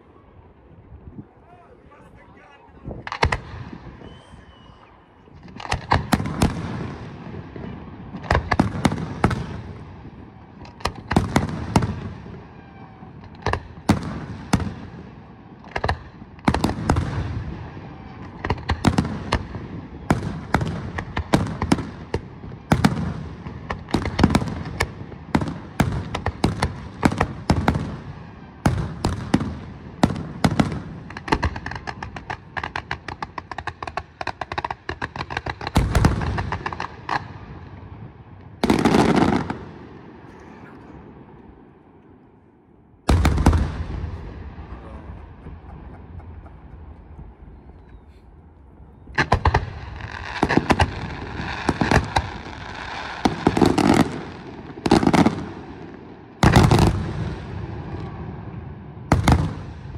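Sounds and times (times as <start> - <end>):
fireworks bursting: 1.9 - 58.2.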